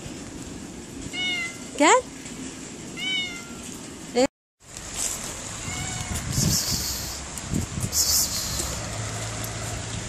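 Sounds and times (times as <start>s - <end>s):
cats meowing: 1.1s - 1.7s, 3.0s - 3.8s, 5.6s - 7.2s.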